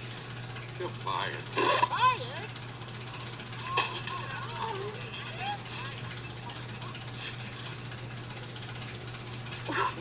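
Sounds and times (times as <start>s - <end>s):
television hum and hiss: 0.0s - 10.0s.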